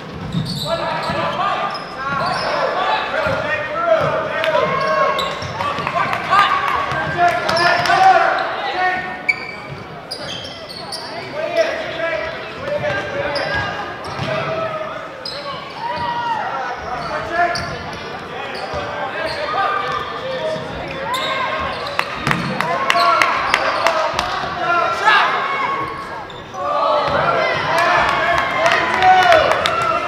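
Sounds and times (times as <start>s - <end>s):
voices talking and calling out: 0.4s - 30.0s.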